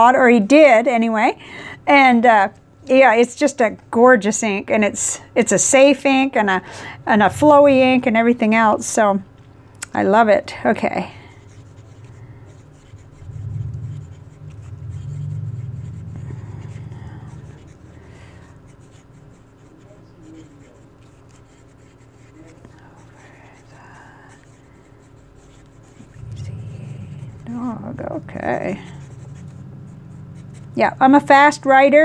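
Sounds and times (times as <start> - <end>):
fountain pen scratching on paper: 10.8 - 31.6
low rumble: 13.1 - 17.5, 26.1 - 31.5.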